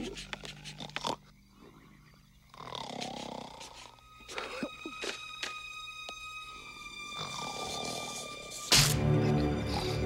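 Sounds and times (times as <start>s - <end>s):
cartoon snoring: 2.5s - 4.0s, 7.2s - 8.3s
pencil scratching on paper: 3.0s - 4.0s.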